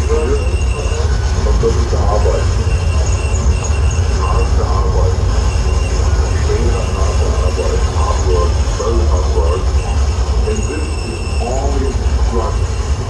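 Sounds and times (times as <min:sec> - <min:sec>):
distorted harsh noise: 0:00.0 - 0:13.0
heavy low rumble: 0:00.0 - 0:13.0.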